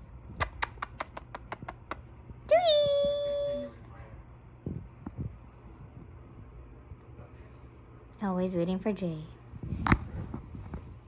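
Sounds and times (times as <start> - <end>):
quick clicks: 0.4 - 2.0.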